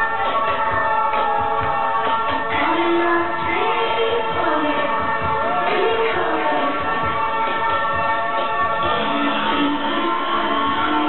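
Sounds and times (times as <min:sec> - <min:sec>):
loud club dance music: 0:00.0 - 0:11.0.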